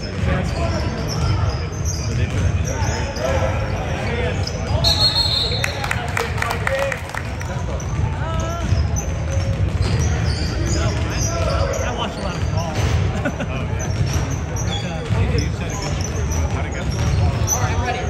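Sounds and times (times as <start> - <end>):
sneakers squeaking on court: 0.0 - 5.7, 7.6 - 18.0.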